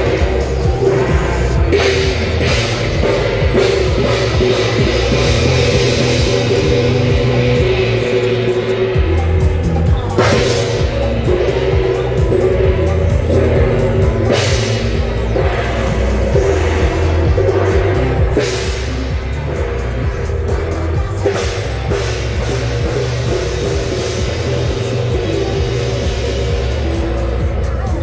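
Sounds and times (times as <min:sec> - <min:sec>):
handheld gong crashing: 0:00.0 - 0:26.9
procession music with pulsing bass: 0:00.0 - 0:28.0.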